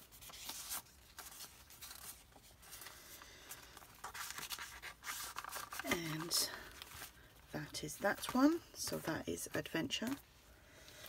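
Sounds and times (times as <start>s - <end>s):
paper and card rustling: 0.0s - 11.0s.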